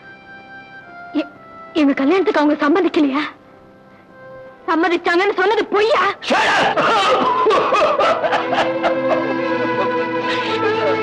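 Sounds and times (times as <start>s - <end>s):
held background music notes: 0.0s - 11.0s
man laughing: 6.3s - 11.0s.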